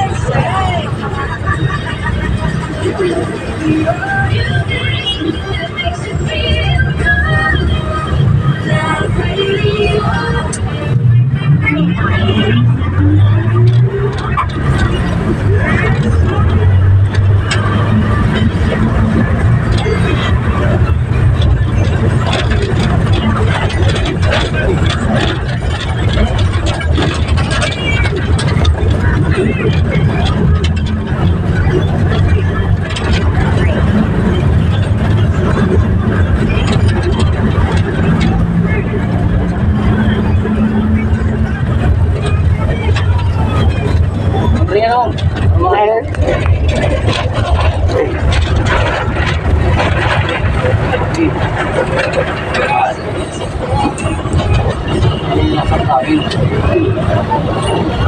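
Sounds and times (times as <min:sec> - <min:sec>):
vehicle engine droning: 0:00.0 - 0:58.0
wind and road noise: 0:00.0 - 0:58.0.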